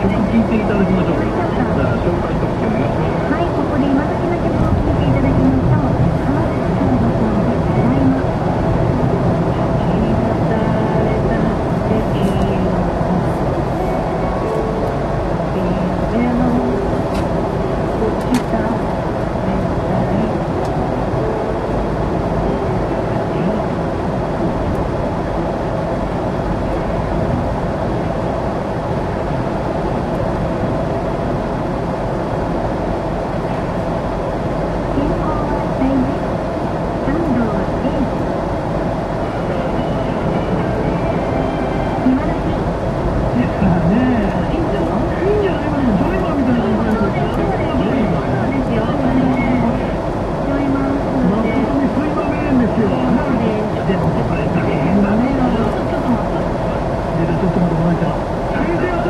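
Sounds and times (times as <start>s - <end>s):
car road and engine noise: 0.0s - 59.0s.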